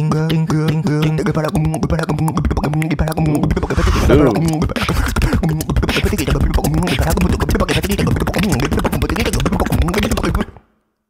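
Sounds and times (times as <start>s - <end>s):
beatboxing vocal percussion: 0.0s - 10.6s
vocal bass and melodic sounds: 0.0s - 10.6s.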